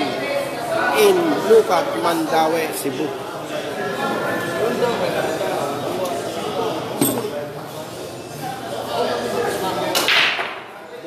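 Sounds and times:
cue ball cracking into pool balls: 0:10.0 - 0:10.7.

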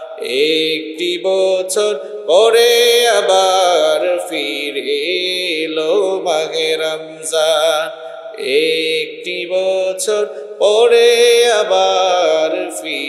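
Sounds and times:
man singing unaccompanied: 0:00.0 - 0:13.0.

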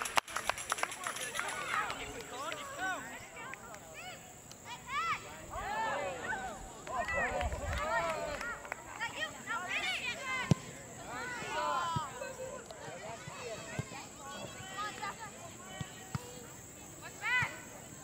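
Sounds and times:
voices shouting and calling: 0:00.9 - 0:18.0.

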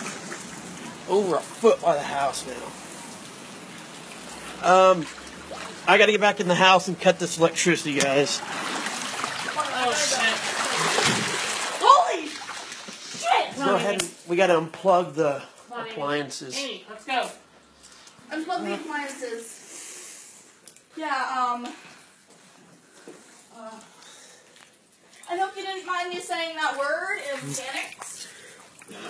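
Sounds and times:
water splashing: 0:00.0 - 0:14.4, 0:25.1 - 0:29.0.

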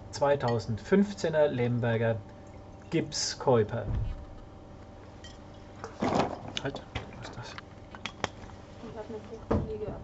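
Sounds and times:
bottles and glasses clinking: 0:05.2 - 0:06.3.

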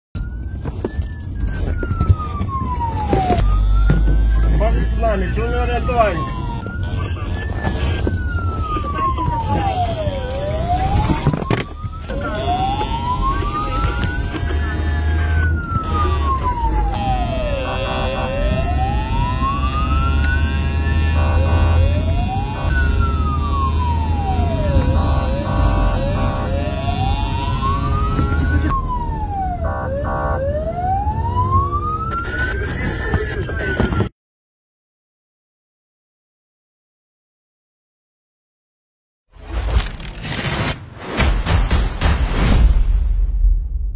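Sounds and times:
car engine and road rumble: 0:00.2 - 0:33.8
police siren wailing: 0:00.2 - 0:34.1
siren short tone blasts: 0:19.5 - 0:22.9, 0:24.6 - 0:28.9, 0:29.5 - 0:30.5.

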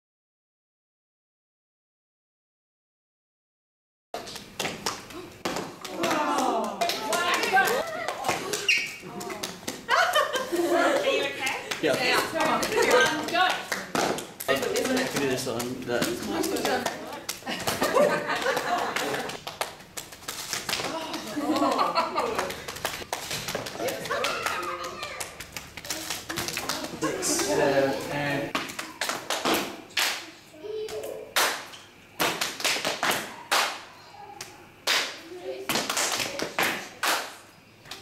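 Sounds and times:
dancers hand clapping: 0:04.2 - 0:27.6.

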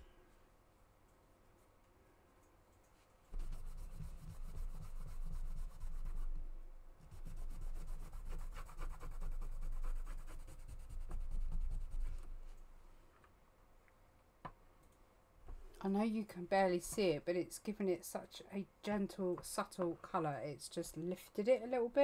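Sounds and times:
brush scrubbing paint on panel: 0:03.3 - 0:06.4, 0:07.0 - 0:12.2.

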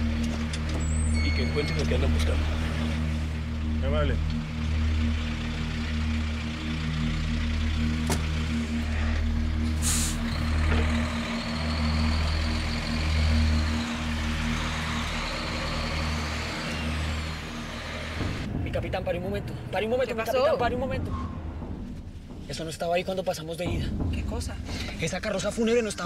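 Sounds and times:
truck diesel engine running: 0:00.0 - 0:22.4
air brake hiss: 0:09.8 - 0:10.3.

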